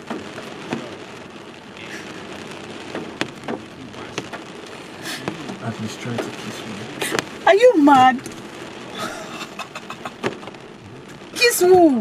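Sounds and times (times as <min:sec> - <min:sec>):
rain hissing on a car: 0:00.0 - 0:12.0
sharp raindrop strikes: 0:00.0 - 0:12.0.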